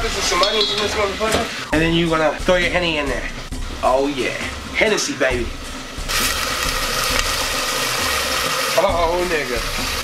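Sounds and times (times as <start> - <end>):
loud sizzling in pot: 0.0 - 10.0
liquid pouring: 6.1 - 10.0.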